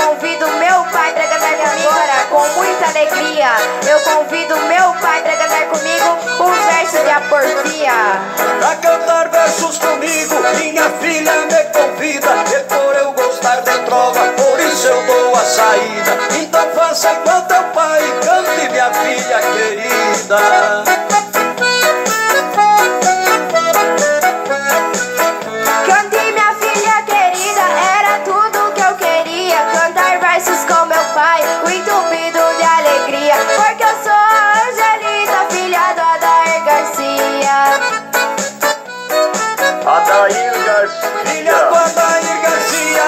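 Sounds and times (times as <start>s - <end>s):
person singing: 0.0s - 23.0s, 24.7s - 38.8s, 39.6s - 43.0s
accordion: 0.0s - 43.0s
steady beat: 37.5s - 43.0s.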